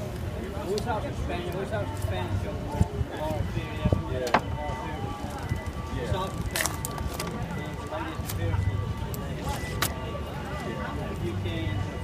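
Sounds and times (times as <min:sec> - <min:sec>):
indistinct background voices: 0:00.0 - 0:12.0
music playing: 0:00.0 - 0:12.0.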